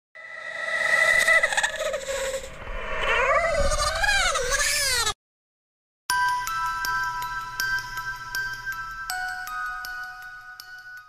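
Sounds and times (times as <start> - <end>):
long wavering cry: 0.2 - 5.0.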